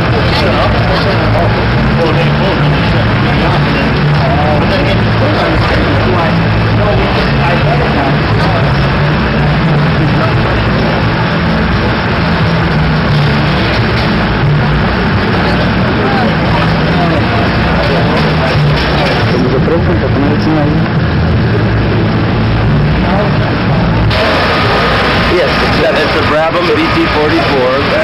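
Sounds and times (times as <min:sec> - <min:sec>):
racing car engine running: 0:00.0 - 0:28.0
voices: 0:00.0 - 0:28.0.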